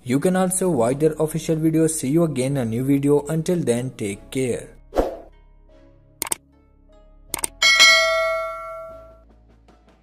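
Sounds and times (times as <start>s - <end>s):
quick clicks: 7.3s - 7.6s
bright bell-like ding: 7.6s - 9.2s.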